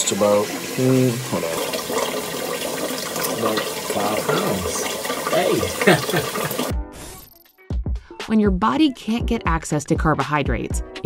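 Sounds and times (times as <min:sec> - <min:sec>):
running water: 0:00.0 - 0:06.7.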